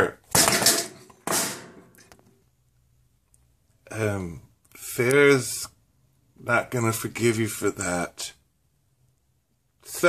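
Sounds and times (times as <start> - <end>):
toy doll knocked over: 0.3 - 1.9.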